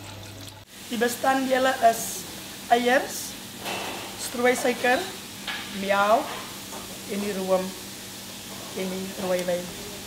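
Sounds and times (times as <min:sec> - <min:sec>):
steady background hiss: 0:00.7 - 0:10.0
woman speaking: 0:00.9 - 0:03.4, 0:04.2 - 0:06.3, 0:07.1 - 0:07.8, 0:08.8 - 0:10.0.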